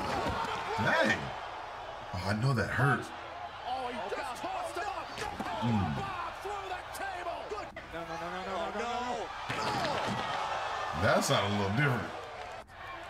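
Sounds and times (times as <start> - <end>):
commentators talking: 2.1 - 10.0.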